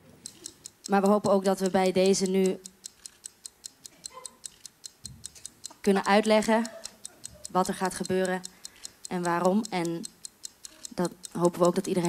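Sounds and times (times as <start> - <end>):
stopwatch ticking: 0.0 - 12.0.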